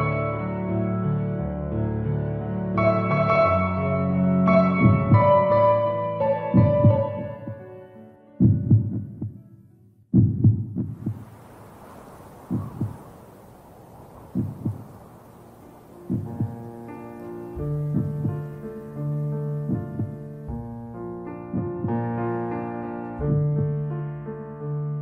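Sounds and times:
piano chords: 0:00.0 - 0:25.0
music tones: 0:02.8 - 0:09.5, 0:14.2 - 0:24.7
heartbeat thumps: 0:04.8 - 0:05.3, 0:06.6 - 0:07.7, 0:08.4 - 0:09.5, 0:10.1 - 0:11.5, 0:12.4 - 0:13.1, 0:14.3 - 0:15.1, 0:16.1 - 0:16.8, 0:17.6 - 0:18.6, 0:19.5 - 0:22.2
soft hiss: 0:11.0 - 0:24.1.

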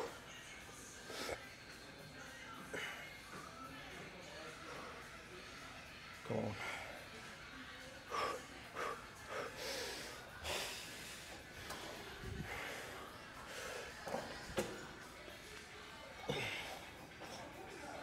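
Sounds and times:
man breathing hard with exertion: 0:08.2 - 0:14.0.

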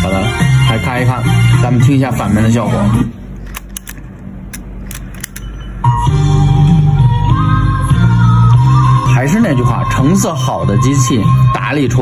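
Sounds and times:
cassette music playback: 0:00.0 - 0:12.0.

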